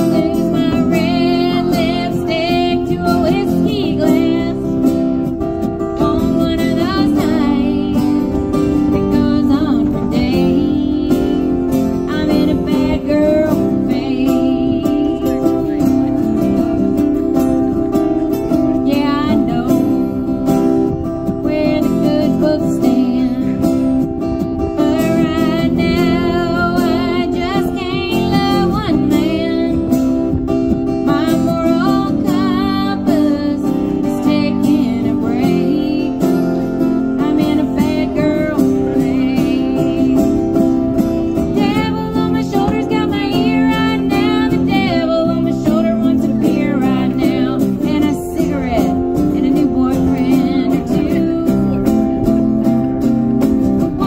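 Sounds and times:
woman singing: 0.0 - 52.8, 53.7 - 54.0
acoustic guitars strummed: 0.0 - 54.0.

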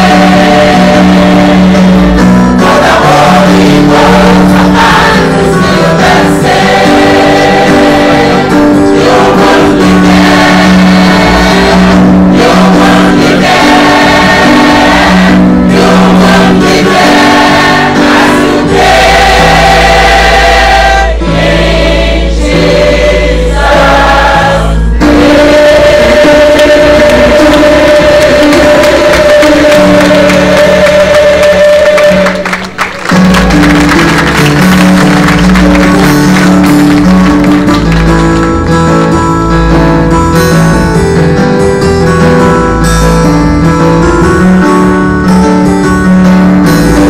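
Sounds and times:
church choir singing gospel: 0.0 - 32.8.

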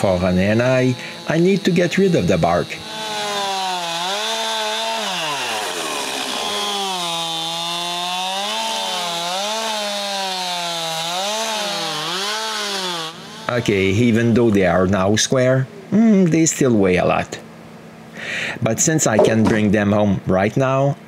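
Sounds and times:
chainsaw cutting through log: 0.0 - 14.8.

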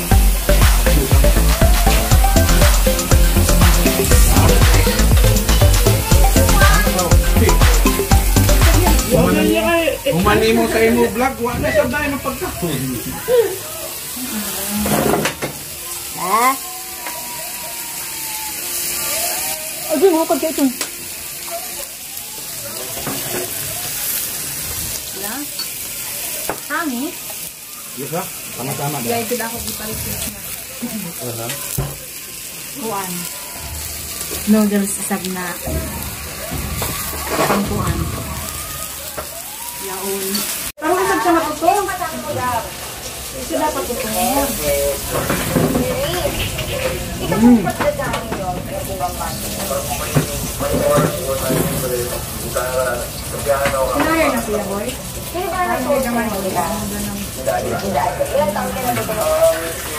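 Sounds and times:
rising vocal call: 0.0 - 10.2
people's voices: 0.0 - 59.9
pork sizzling on grill: 0.0 - 59.9.

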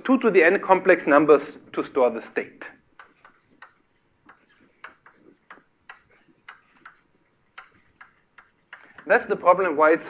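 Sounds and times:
chalk tapping on a blackboard: 3.0 - 9.3.

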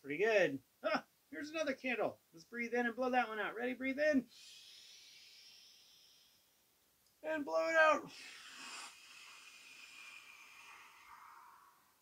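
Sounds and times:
breathy exhale: 4.3 - 6.6, 8.1 - 12.0.

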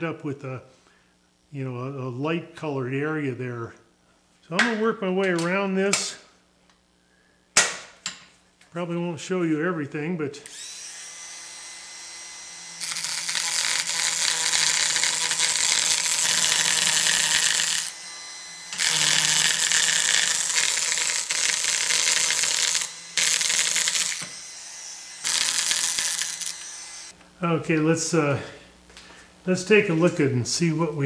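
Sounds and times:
power carver cutting wood: 10.4 - 27.2.

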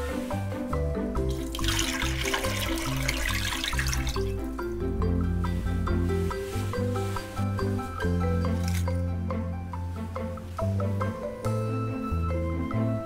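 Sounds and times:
background music: 0.0 - 13.0
liquid pouring into water: 1.3 - 4.4, 8.6 - 8.9.

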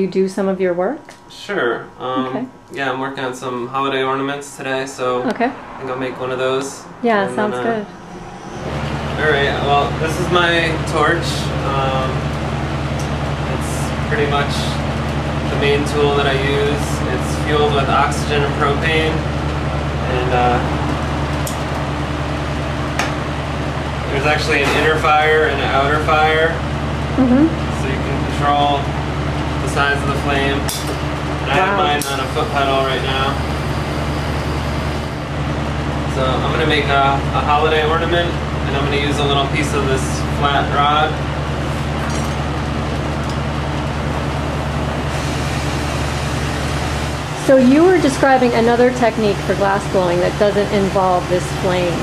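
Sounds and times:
low hum: 0.0 - 52.0
torch flame hissing: 44.9 - 47.6.

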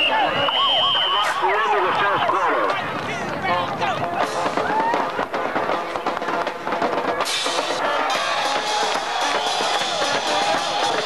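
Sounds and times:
spectators' voices: 0.0 - 11.0
drum beat: 3.8 - 11.0
band playing: 4.2 - 11.0.

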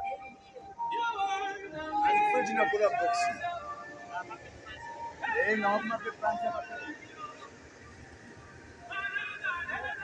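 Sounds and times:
music with singing voice: 0.0 - 10.0.

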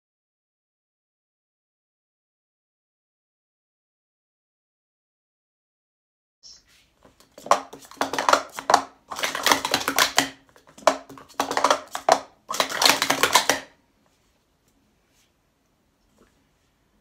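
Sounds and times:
plastic cups clattering: 7.1 - 13.8.

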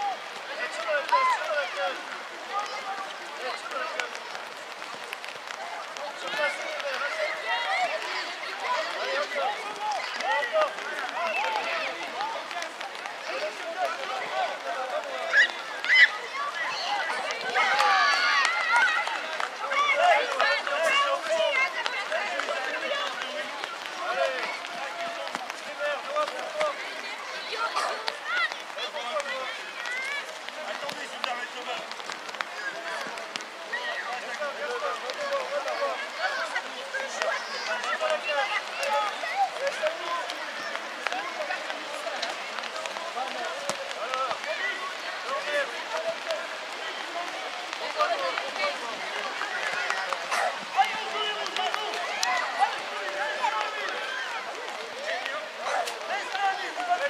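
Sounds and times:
young children calling and shouting: 0.0 - 57.0.

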